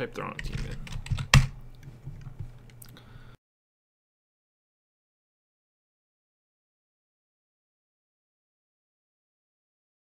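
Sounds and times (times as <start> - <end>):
faint low hum: 0.0 - 3.4
keyboard keystrokes: 0.4 - 1.6.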